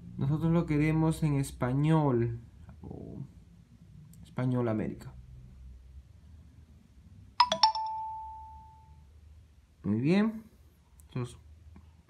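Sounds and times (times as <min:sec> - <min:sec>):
electronic notification chime: 0:07.4 - 0:09.0.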